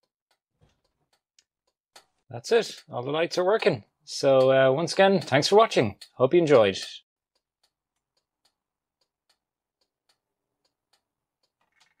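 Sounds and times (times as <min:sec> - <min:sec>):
faint ticking: 0:00.3 - 0:12.0.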